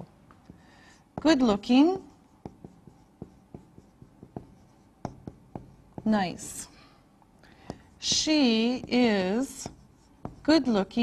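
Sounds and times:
marker writing on whiteboard: 0.4s - 6.6s, 7.6s - 11.0s.

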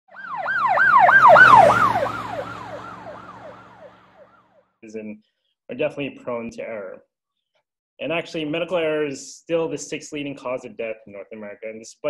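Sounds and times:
emergency vehicle siren yelping: 0.1s - 4.5s.

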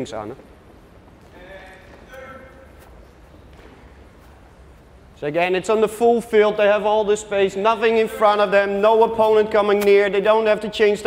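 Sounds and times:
sneaker steps: 0.0s - 5.2s
distant voice calling out: 1.3s - 3.0s.

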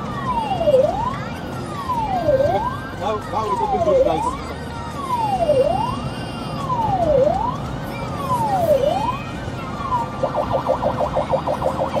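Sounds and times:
ambulance siren: 0.0s - 12.0s
road and engine rumble: 0.0s - 12.0s.

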